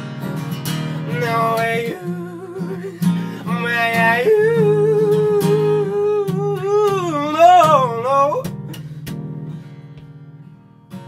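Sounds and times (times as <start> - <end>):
acoustic guitar strumming: 0.0 - 11.0
man singing wordless note: 1.1 - 8.5.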